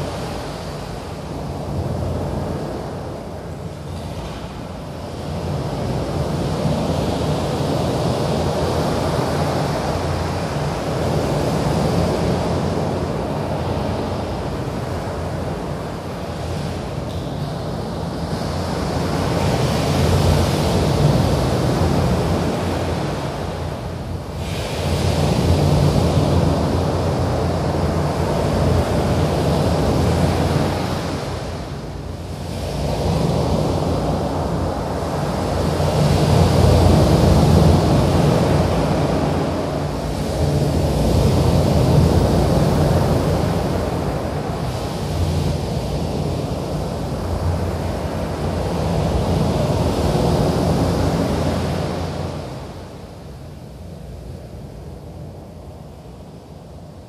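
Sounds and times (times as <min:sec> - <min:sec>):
rushing surf-like noise: 0:00.0 - 0:57.0
steady low hum: 0:00.0 - 0:57.0.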